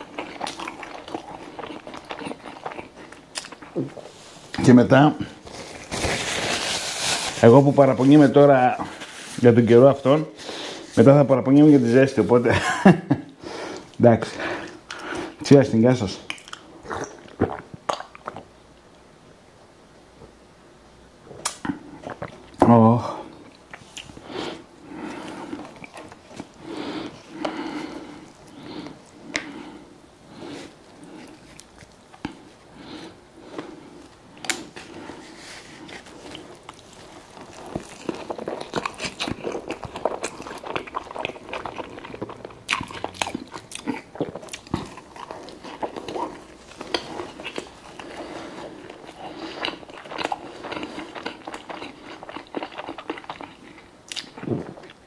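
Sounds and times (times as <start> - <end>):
person chewing food: 0.0 - 4.6, 13.7 - 15.4, 16.2 - 18.5, 21.4 - 22.6, 23.2 - 55.0
wet mouth clicks: 16.3 - 18.5.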